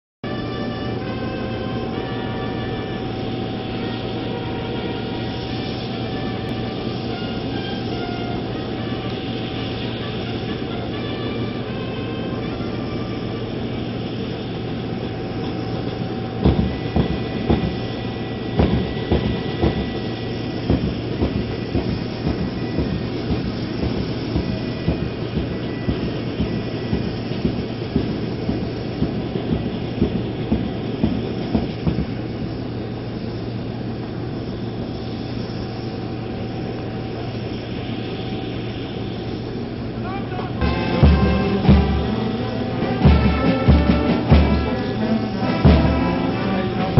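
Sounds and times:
aircraft engines humming: 0.2s - 46.9s
loud regular thumps: 16.4s - 32.3s, 40.6s - 46.9s.

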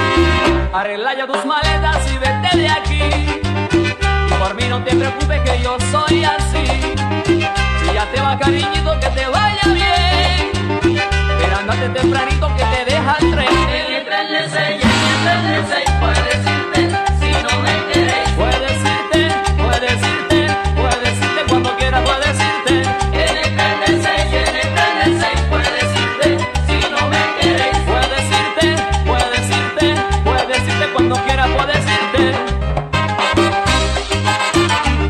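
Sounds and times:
instrumental latin dance music: 0.0s - 35.0s.

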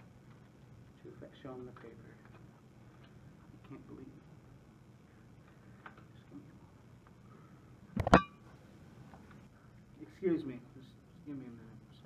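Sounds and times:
short metallic ringing: 8.0s - 8.4s.

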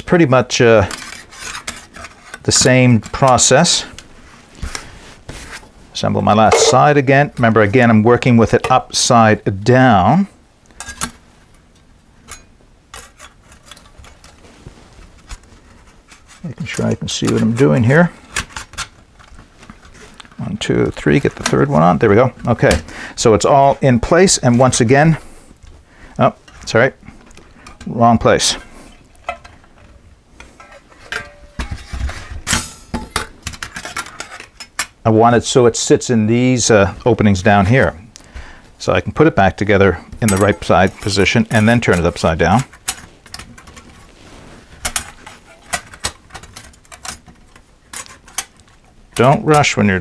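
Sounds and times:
metal panels clinking and knocking: 30.5s - 35.0s
thin metal panels clicking: 44.8s - 49.6s.

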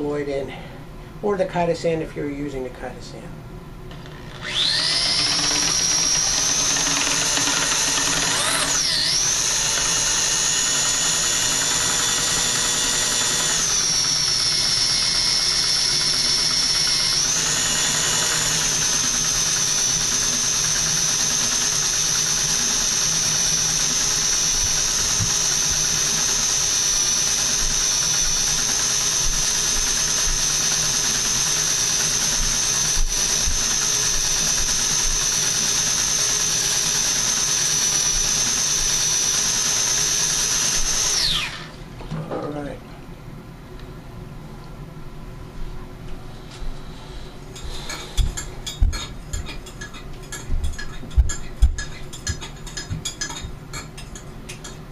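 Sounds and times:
electric drill whining: 3.9s - 41.8s, 46.9s - 49.0s.

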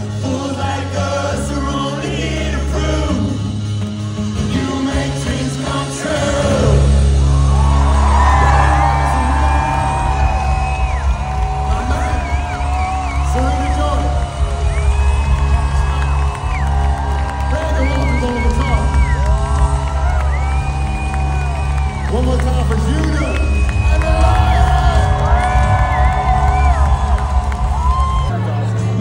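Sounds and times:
heavy bass: 0.0s - 29.0s
live band playing: 0.0s - 29.0s
singer holding long notes: 0.0s - 29.0s
crowd cheering: 6.1s - 29.0s.

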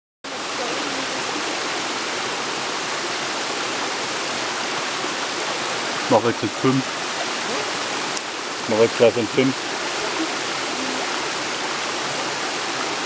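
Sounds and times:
water splashing over rocks: 0.3s - 13.0s.

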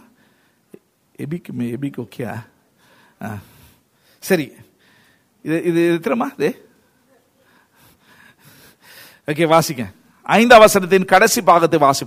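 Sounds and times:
person breathing softly: 2.8s - 4.2s, 4.8s - 5.4s, 7.4s - 9.3s.

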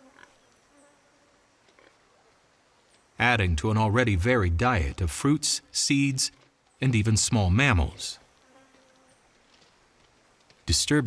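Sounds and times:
flying insect buzz: 0.0s - 1.5s, 8.3s - 9.3s.

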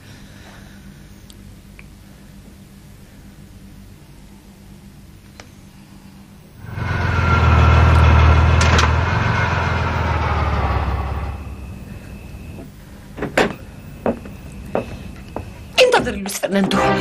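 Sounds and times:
car engine running loudly: 6.6s - 12.5s.

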